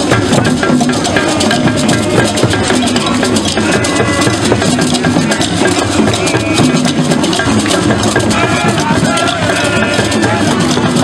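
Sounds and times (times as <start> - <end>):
hand drum ensemble playing: 0.0 - 11.0.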